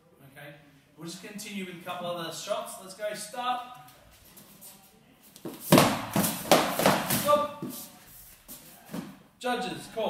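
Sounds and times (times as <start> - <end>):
foam swords whacking: 5.7 - 7.7.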